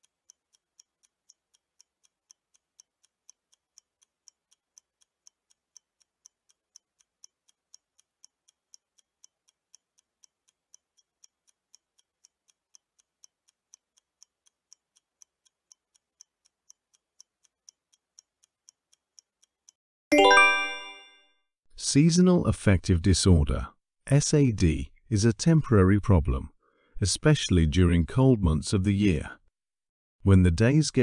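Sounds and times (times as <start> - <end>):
clock ticking: 0.0 - 20.9, 30.4 - 31.0.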